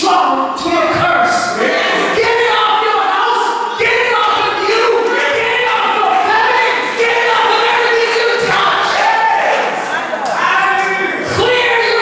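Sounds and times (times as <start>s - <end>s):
congregation singing: 0.0s - 12.0s.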